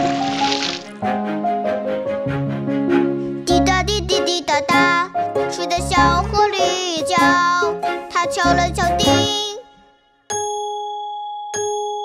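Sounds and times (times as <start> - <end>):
person singing: 3.4 - 9.7
alarm clock bell ringing: 10.3 - 12.0.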